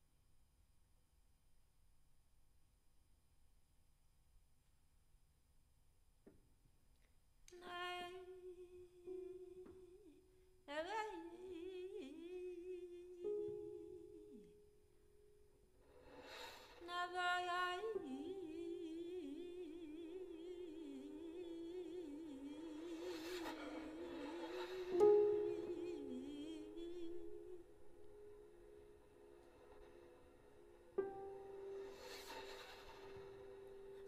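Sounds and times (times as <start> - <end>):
woman singing: 7.5 - 14.6, 16.8 - 28.3.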